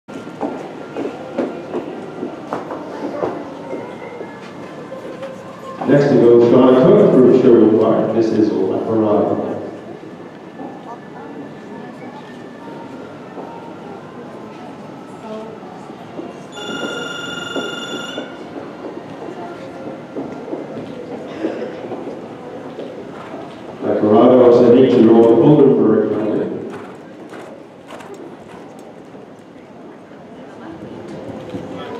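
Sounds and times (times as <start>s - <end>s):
busy indoor arena noise: 0.1s - 31.9s
man announcing: 5.8s - 9.6s, 23.8s - 26.6s.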